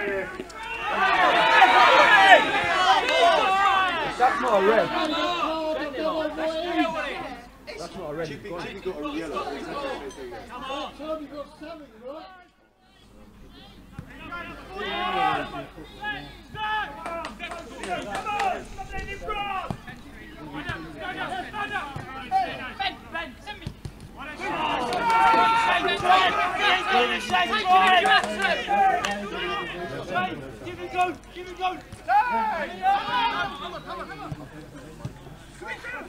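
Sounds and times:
people shouting and talking: 0:00.0 - 0:36.0.

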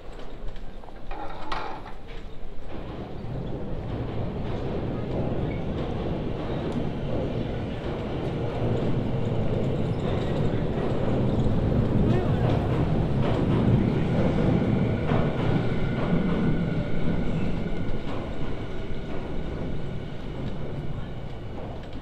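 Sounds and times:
train rumbling over tracks: 0:00.0 - 0:22.0.

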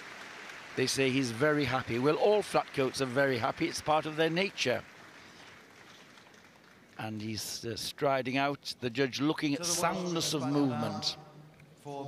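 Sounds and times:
indoor arena background noise: 0:00.0 - 0:12.0.

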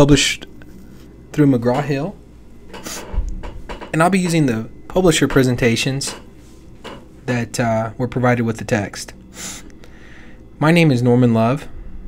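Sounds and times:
person speaking: 0:01.3 - 0:02.2, 0:03.9 - 0:06.3, 0:07.2 - 0:09.2.

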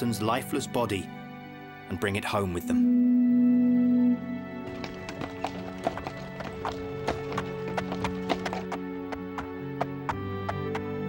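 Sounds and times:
background music: 0:00.0 - 0:11.0
hooves clip-clopping at a walk: 0:04.7 - 0:11.0.

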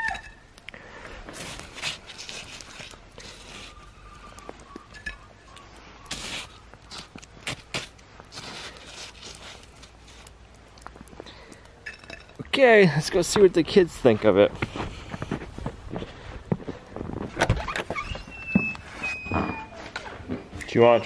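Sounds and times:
wooden spoon scraping snow: 0:01.3 - 0:04.2, 0:06.1 - 0:10.3.

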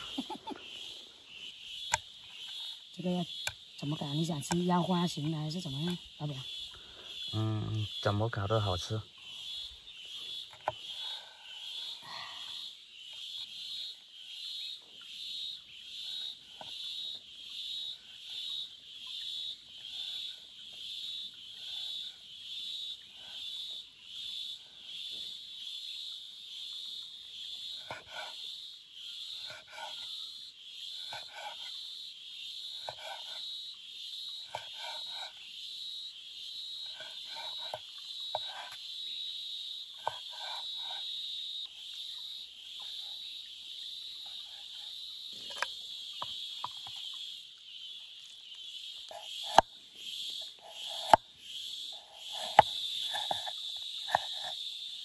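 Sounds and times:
high-pitched insects or frogs calling: 0:00.0 - 0:55.0.

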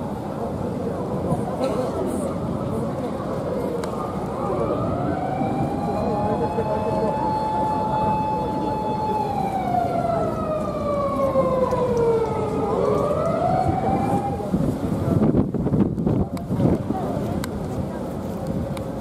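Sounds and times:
siren wailing: 0:04.0 - 0:14.5.

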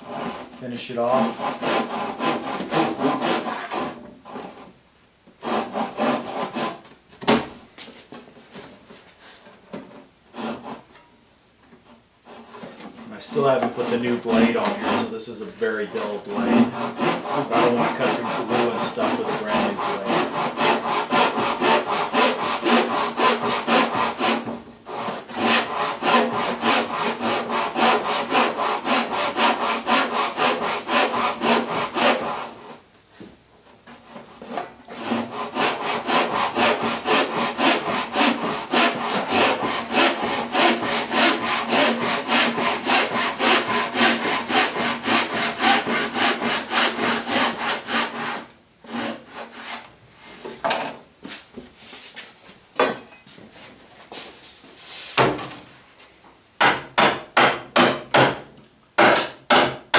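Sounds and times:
handsaw cutting wood: 0:00.0 - 0:04.7, 0:05.4 - 0:06.9, 0:10.3 - 0:10.9, 0:12.2 - 0:32.8, 0:33.9 - 0:49.9.

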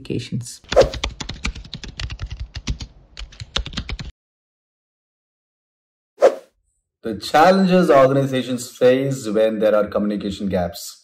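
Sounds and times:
computer keyboard typing: 0:00.8 - 0:04.1.

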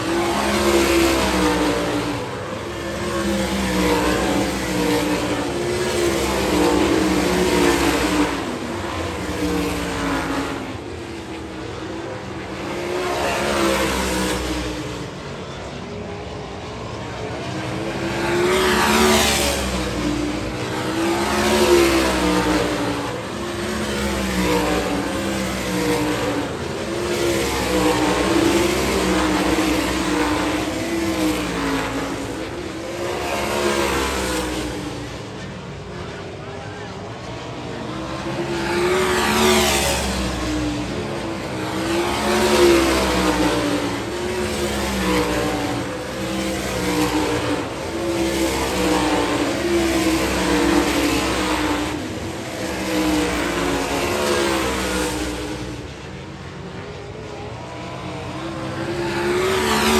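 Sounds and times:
race car engines: 0:00.0 - 0:59.9.

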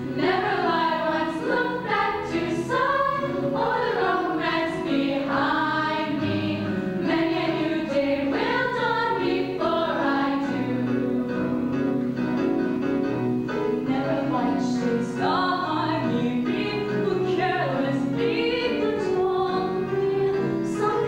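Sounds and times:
girls singing in chorus: 0:00.2 - 0:10.8, 0:13.9 - 0:21.0.

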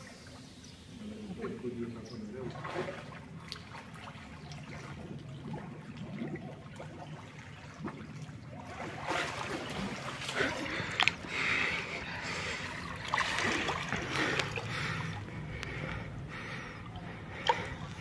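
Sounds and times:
pool water splashing: 0:00.0 - 0:18.0
steady low hum: 0:00.0 - 0:18.0
sharp splash: 0:02.5 - 0:04.9, 0:07.8 - 0:11.2, 0:12.9 - 0:14.7.

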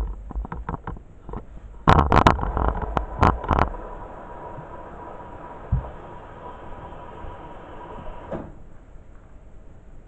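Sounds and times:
washing machine running: 0:02.0 - 0:08.8
washing machine knock: 0:05.6 - 0:06.1.

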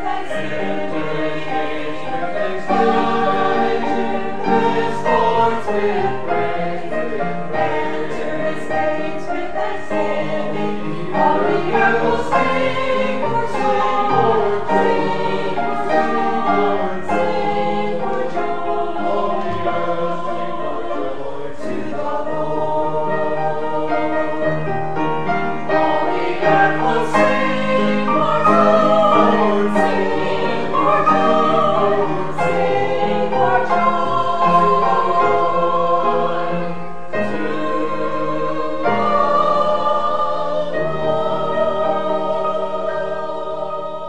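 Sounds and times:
choir singing: 0:00.0 - 0:44.0.

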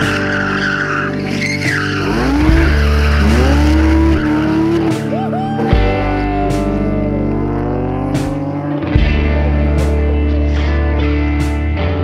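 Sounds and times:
tyres squealing: 0:00.0 - 0:07.0
car engine revving hard: 0:00.0 - 0:10.0
rock music with guitar: 0:00.0 - 0:12.0.

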